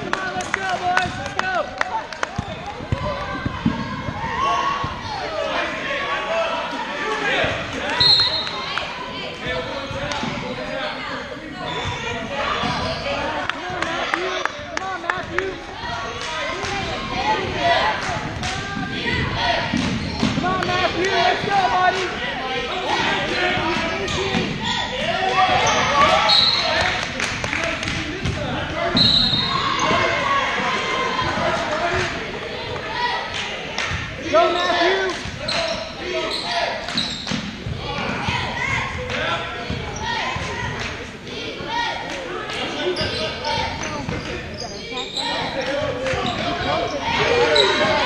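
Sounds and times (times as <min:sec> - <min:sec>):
indistinct voices in a gym: 0:00.0 - 0:48.0.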